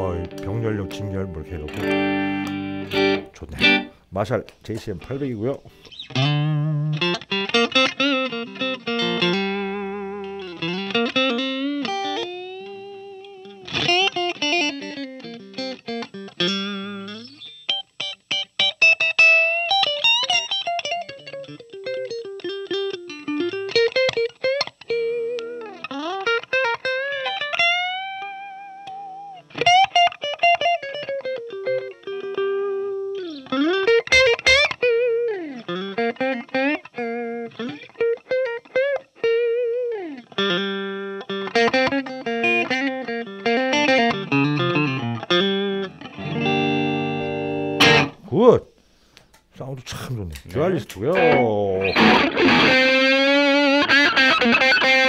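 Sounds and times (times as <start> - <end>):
clean electric guitar: 0.0 - 48.5, 50.2 - 55.0.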